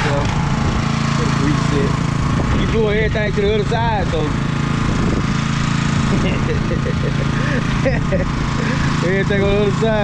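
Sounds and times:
engine running steadily: 0:00.0 - 0:10.0.

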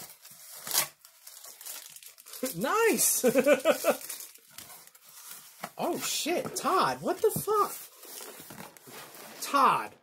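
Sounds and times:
packing paper rustling: 0:00.0 - 0:09.9.

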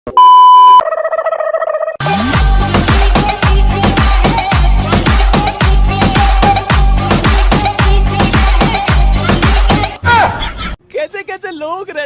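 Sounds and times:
test tone beep: 0:00.1 - 0:00.8.

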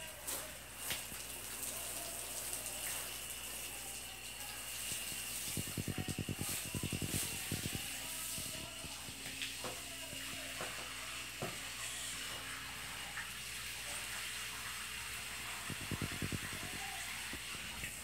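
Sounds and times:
hose nozzle spraying water: 0:04.6 - 0:10.4, 0:15.2 - 0:17.4.

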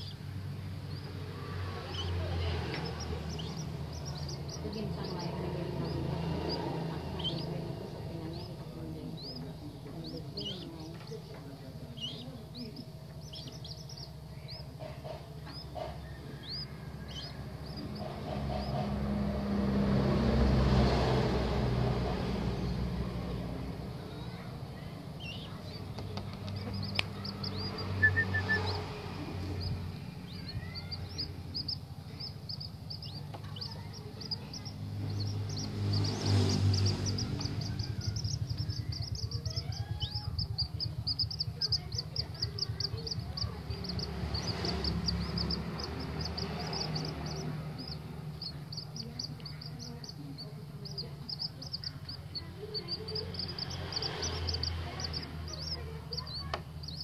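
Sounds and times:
chicks peeping: 0:00.0 - 0:57.0.

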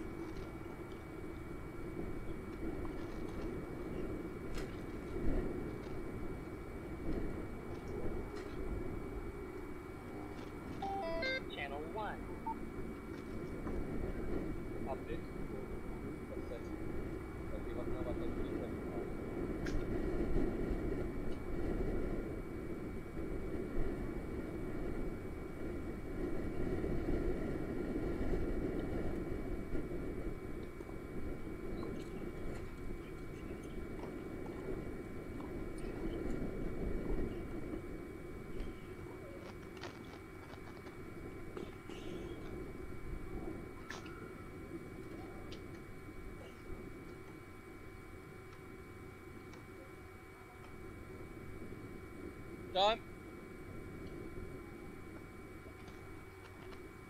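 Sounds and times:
steady background rumble: 0:00.0 - 0:57.0.

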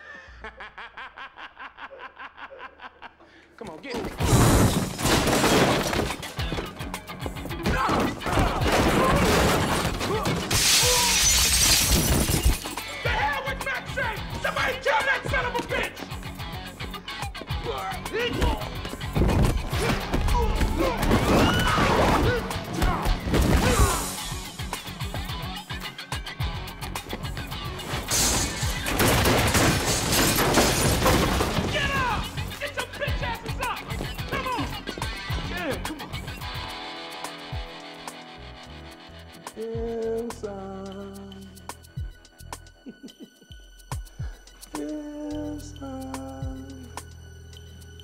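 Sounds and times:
glass shattering: 0:04.1 - 0:06.4, 0:07.9 - 0:12.8, 0:27.8 - 0:32.3
action film music with beat: 0:12.8 - 0:28.0, 0:41.2 - 0:45.6.

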